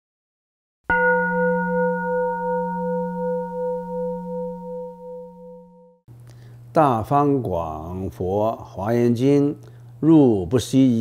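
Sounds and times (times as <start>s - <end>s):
metal bowl bell ringing: 0.9s - 6.0s.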